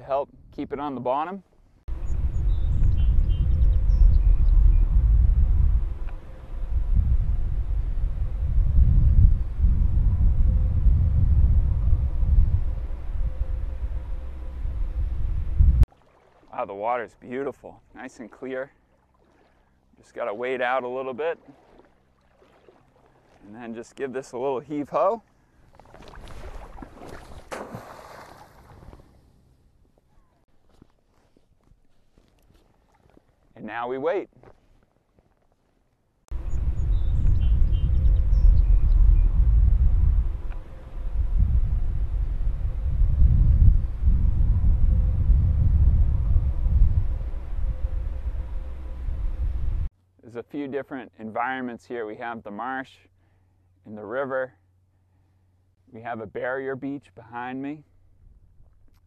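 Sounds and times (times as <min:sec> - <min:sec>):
wind buffeting microphone: 0:01.9 - 0:15.9, 0:36.3 - 0:49.9
water sloshing and gurgling: 0:15.8 - 0:16.9, 0:17.8 - 0:23.8, 0:25.2 - 0:29.3, 0:32.2 - 0:33.5
trap splashing into water: 0:25.7 - 0:29.1.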